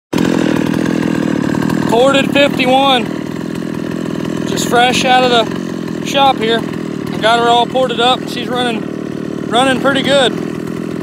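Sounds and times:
chainsaw running: 0:00.1 - 0:11.0.

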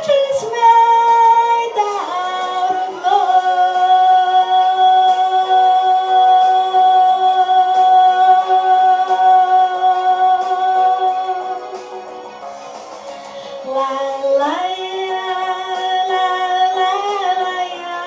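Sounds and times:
woman singing a long note: 0:00.0 - 0:12.2, 0:13.6 - 0:18.0
backing music: 0:00.0 - 0:18.0.

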